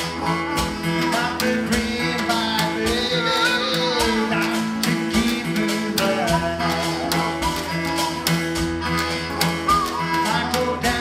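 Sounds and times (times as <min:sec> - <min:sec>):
harmonica melody with sliding notes: 0:00.0 - 0:11.0
percussion strokes: 0:00.0 - 0:11.0
strummed acoustic guitar: 0:00.0 - 0:11.0.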